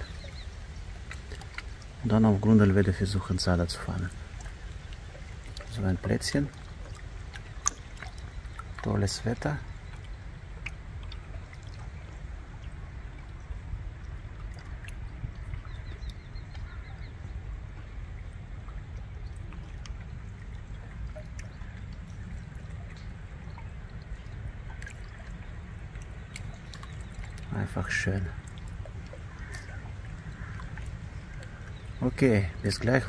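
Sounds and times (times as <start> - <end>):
river water lapping: 0.0 - 33.0
faint bird chirps: 14.6 - 18.0.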